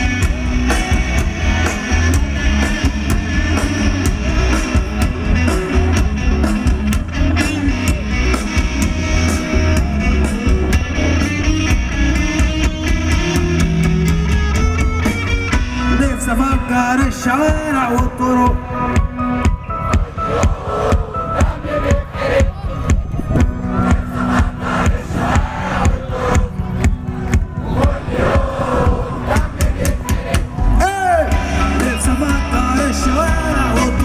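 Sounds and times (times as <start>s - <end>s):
drum kit steady beat: 0.0s - 16.6s, 17.4s - 34.0s
electric guitar: 0.0s - 21.8s, 22.9s - 34.0s.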